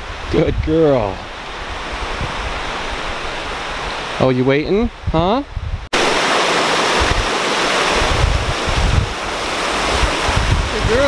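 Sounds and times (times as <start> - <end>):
mountain stream rushing: 0.0 - 5.0, 5.9 - 11.0.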